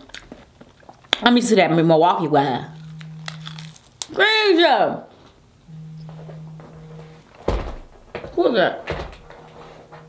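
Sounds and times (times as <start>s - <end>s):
steady low hum: 2.4s - 4.1s, 5.4s - 8.3s, 8.9s - 10.0s.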